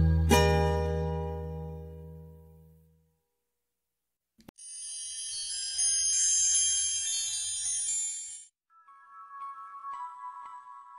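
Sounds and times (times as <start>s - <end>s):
shimmering chimes: 4.6s - 10.9s.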